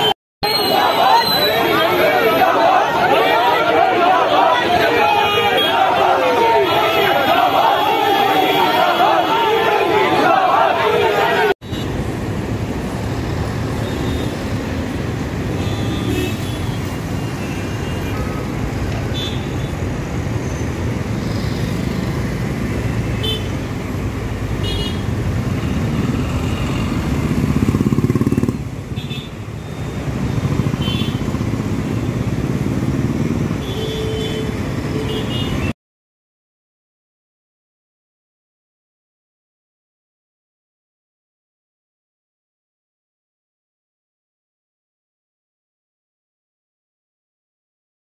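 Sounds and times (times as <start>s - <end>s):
road traffic noise: 0.0s - 35.8s
crowd of men shouting: 0.4s - 11.6s.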